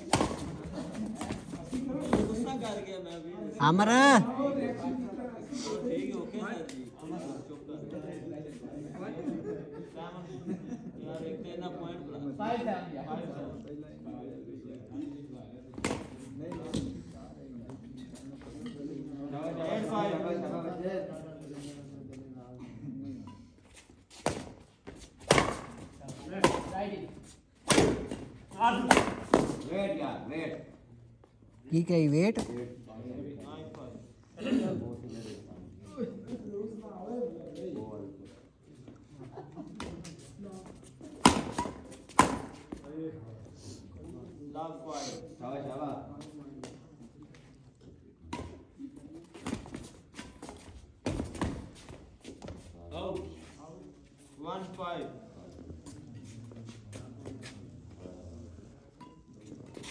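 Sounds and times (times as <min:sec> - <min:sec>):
racket hitting shuttlecock: 0:25.2 - 0:25.8, 0:27.6 - 0:29.7, 0:41.2 - 0:42.6
racket striking shuttlecock: 0:27.6 - 0:28.2.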